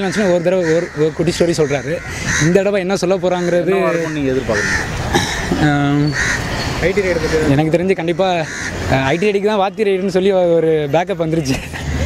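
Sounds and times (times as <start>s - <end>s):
crows cawing: 0.0s - 9.6s
man speaking: 3.1s - 4.8s.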